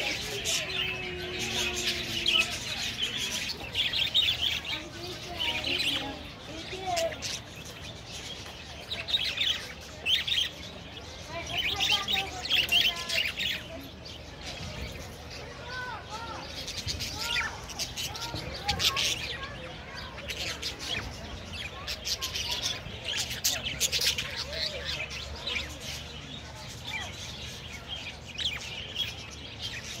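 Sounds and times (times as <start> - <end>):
budgerigars chirping and chattering: 0.0 - 30.0.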